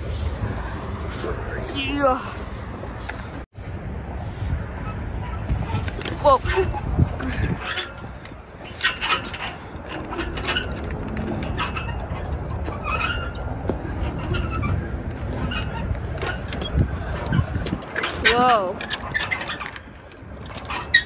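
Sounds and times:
wind rumbling on microphone: 0.0s - 21.0s
swing chains clicking and rattling: 5.2s - 21.0s.

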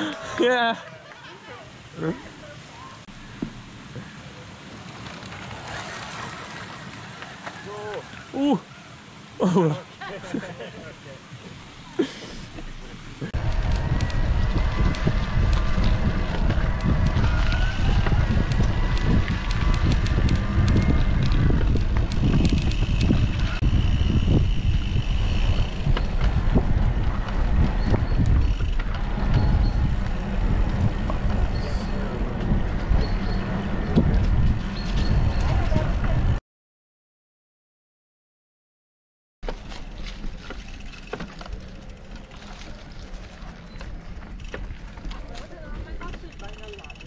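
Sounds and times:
bike tyre noise: 0.0s - 36.4s, 39.4s - 47.0s
wind rumble on microphone: 12.6s - 36.4s.

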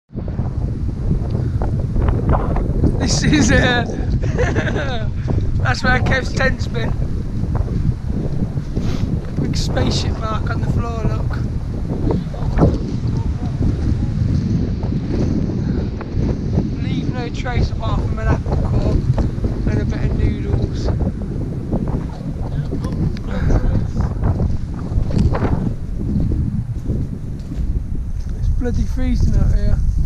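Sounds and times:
wind buffeting microphone: 0.1s - 30.0s.

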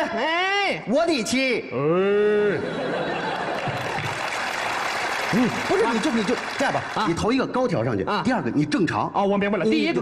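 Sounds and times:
audience applauding: 3.4s - 7.2s.

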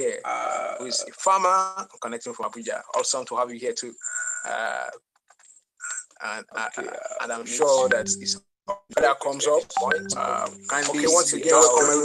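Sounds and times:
distorted voice-like sound: 5.8s - 8.4s.

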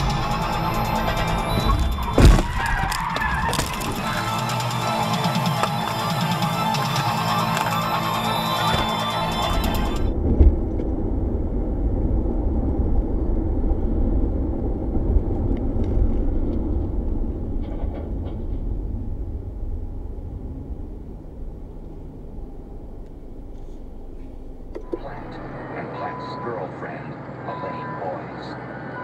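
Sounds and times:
car road rumble: 0.0s - 29.0s.

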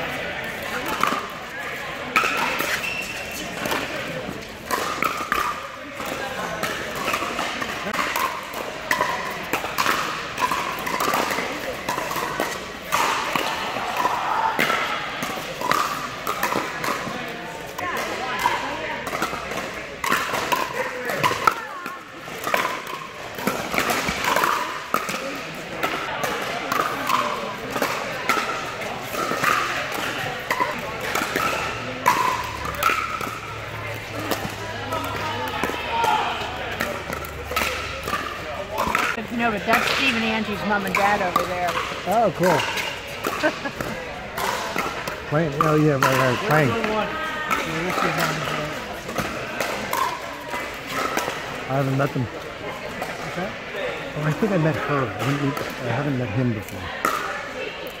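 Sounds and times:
many people's voices: 0.0s - 58.0s
paddles hitting plastic ball: 3.6s - 51.6s
ball bouncing on court: 17.8s - 51.5s.

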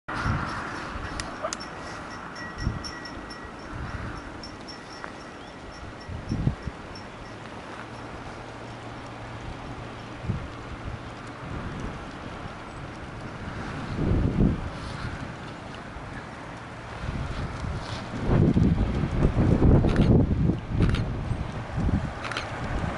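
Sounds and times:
wind buffeting microphone: 0.1s - 22.9s.

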